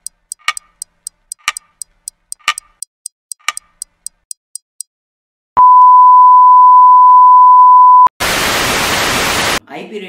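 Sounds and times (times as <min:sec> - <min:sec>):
steady test tone beep: 0:05.6 - 0:08.1.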